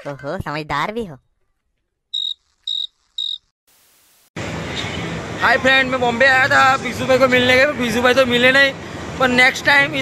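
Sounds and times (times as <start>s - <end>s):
high cricket chirps: 2.2s - 3.5s.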